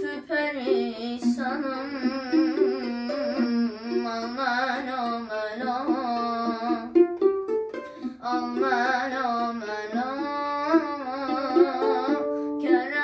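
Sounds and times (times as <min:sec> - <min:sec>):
violin melody with vibrato: 0:00.0 - 0:13.0.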